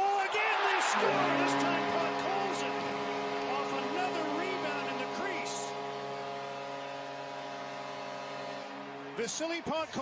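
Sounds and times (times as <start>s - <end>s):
people shouting: 0.0s - 1.9s
crowd cheering: 0.0s - 10.0s
arena goal horn: 0.2s - 10.0s.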